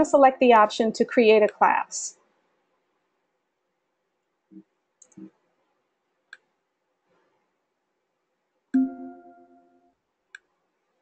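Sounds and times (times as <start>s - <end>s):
computer mouse clicks: 4.6s - 5.3s.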